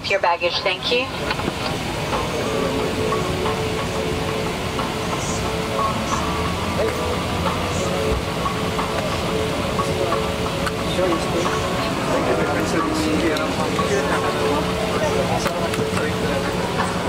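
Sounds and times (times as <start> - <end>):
faint indistinct voices: 0.0 - 17.0.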